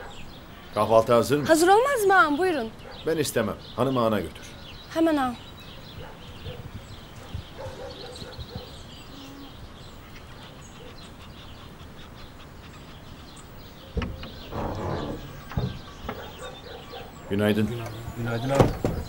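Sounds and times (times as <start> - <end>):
small birds chirping: 0.0 - 19.0
knocks and clatter: 14.0 - 16.4.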